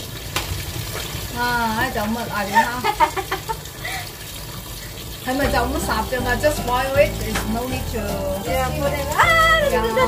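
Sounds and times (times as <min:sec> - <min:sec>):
tap running into sink: 0:05.2 - 0:10.0.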